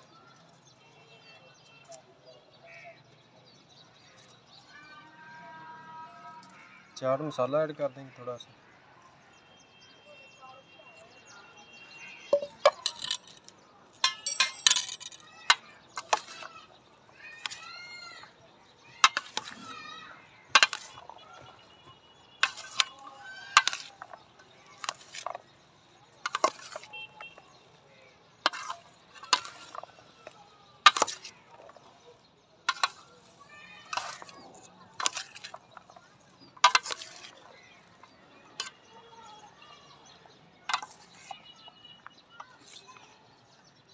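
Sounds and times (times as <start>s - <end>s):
metal spoons clinking on steel bowl: 12.4s - 16.5s, 19.0s - 19.6s, 20.6s - 21.6s, 22.4s - 24.2s, 24.8s - 25.4s, 26.2s - 27.3s, 28.5s - 31.9s, 32.7s - 33.1s, 33.9s - 36.0s, 36.6s - 37.4s, 38.6s - 38.8s, 40.7s - 41.4s
soft shuffle of fruit pieces: 32.8s - 39.6s.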